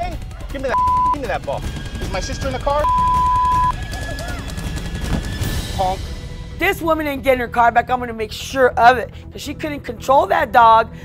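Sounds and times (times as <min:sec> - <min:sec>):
censor bleep tone: 0:00.8 - 0:01.2, 0:02.8 - 0:03.7.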